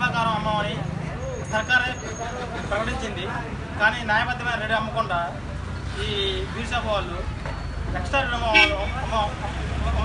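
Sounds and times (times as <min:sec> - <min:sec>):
low traffic rumble: 0:00.0 - 0:10.0.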